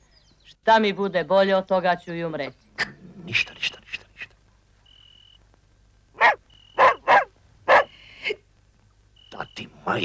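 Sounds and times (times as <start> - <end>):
dog barking: 6.2 - 7.9.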